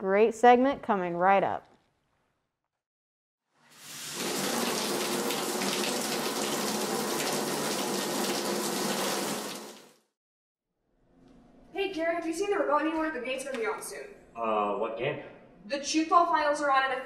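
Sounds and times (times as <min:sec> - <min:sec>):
shower spray running: 0:03.6 - 0:10.0.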